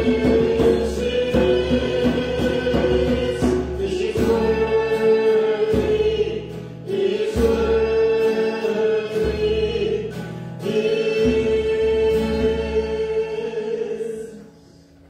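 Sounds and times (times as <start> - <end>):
strummed acoustic guitar: 0.0 - 15.0
voices singing a worship song: 0.0 - 15.0.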